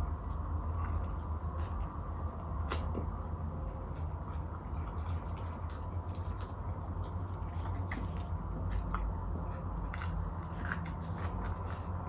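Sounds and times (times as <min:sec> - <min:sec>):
person chewing an onion: 0:00.0 - 0:12.0.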